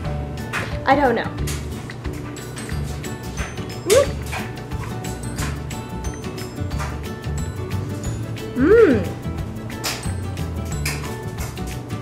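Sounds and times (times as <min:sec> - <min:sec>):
dog yipping: 0:03.8 - 0:04.4.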